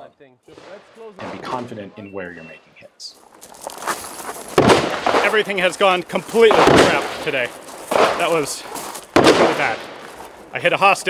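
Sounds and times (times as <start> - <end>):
rustling and gear noise: 3.1 - 10.6
footsteps crunching on gravel: 3.1 - 10.7.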